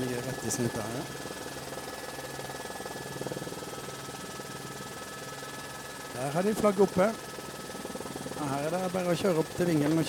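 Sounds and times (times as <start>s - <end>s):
aircraft engine and rotor hum: 0.0s - 10.0s.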